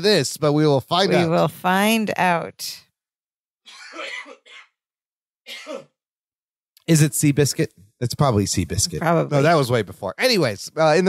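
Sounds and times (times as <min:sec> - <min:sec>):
person clearing throat: 0:03.7 - 0:04.8, 0:05.5 - 0:06.0.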